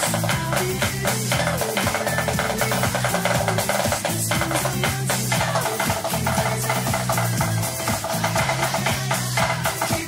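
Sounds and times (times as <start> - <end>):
pop song with bass and drums: 0.0 - 10.0
sticks on practice pad: 0.0 - 10.0.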